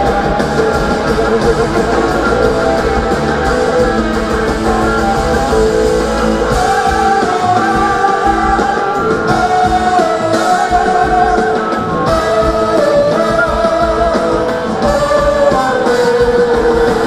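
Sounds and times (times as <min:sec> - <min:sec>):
electric guitar sustained notes: 0:00.0 - 0:17.0
rock band playing live: 0:00.0 - 0:17.0.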